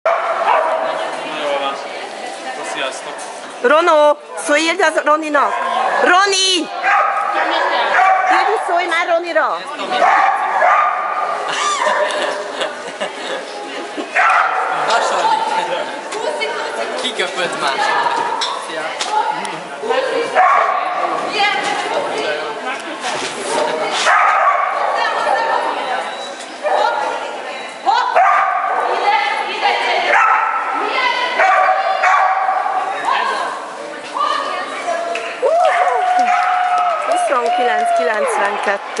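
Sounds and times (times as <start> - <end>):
dog barking and yipping: 0.1 - 0.9, 6.8 - 8.6, 10.0 - 12.0, 24.1 - 25.5, 28.2 - 28.9, 30.1 - 30.7, 31.4 - 32.8
people talking: 37.1 - 39.0.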